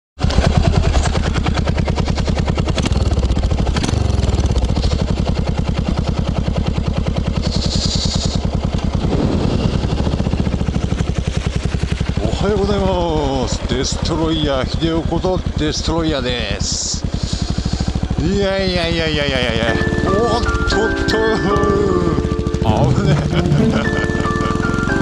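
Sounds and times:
motorcycle engine running: 0.2 - 25.0.

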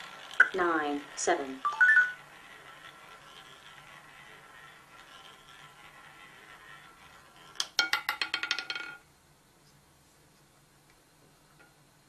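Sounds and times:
roulette ball clattering: 0.0 - 9.1
faint steady hum: 0.0 - 12.0.

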